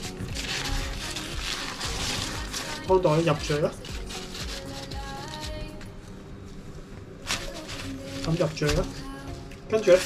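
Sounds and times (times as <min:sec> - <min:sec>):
bag rustling: 0:00.0 - 0:05.4, 0:07.2 - 0:10.0
soft background music: 0:00.0 - 0:10.0.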